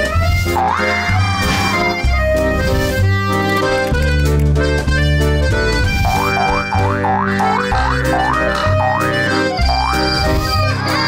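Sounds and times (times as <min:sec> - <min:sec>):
background music with chords and bass: 0:00.0 - 0:11.0
cartoon boing sound effects: 0:00.6 - 0:01.1, 0:06.2 - 0:09.1.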